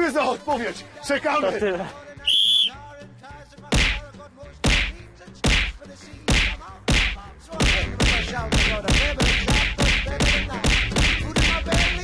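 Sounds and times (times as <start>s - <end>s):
whistle blast: 2.2s - 2.8s.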